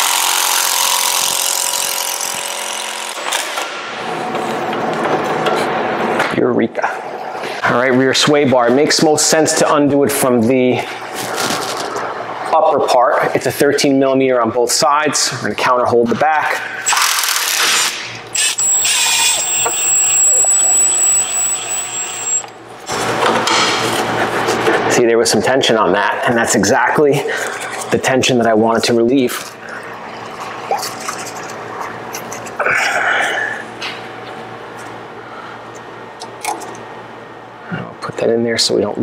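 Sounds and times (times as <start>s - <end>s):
impact wrench whining: 16.9s - 22.6s
rough mechanical noise: 16.9s - 23.2s
steady low hum: 18.2s - 39.0s.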